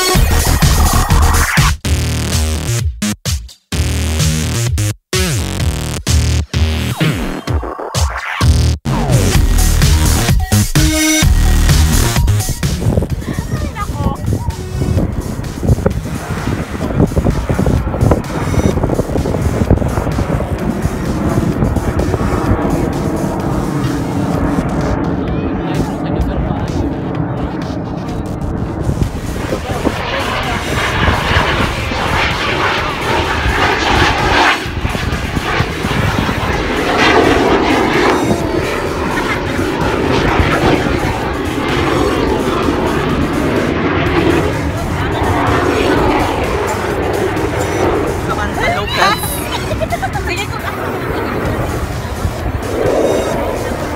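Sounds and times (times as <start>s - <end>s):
jet aircraft roaring overhead: 0.0s - 1.6s, 11.2s - 53.9s
crowd noise: 20.0s - 53.9s.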